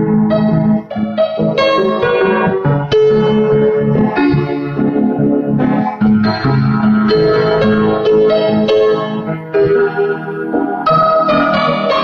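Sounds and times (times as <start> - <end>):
slow solo piano: 0.0 - 12.0.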